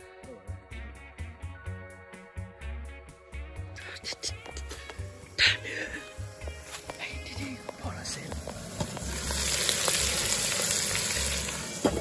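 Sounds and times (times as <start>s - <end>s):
meat sizzling in a pot: 4.7s - 12.0s.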